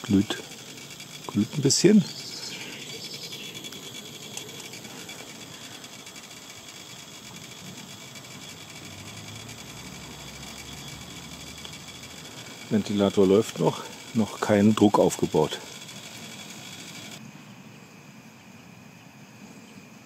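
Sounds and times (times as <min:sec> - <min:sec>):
small electric fan whining: 0:00.0 - 0:20.0.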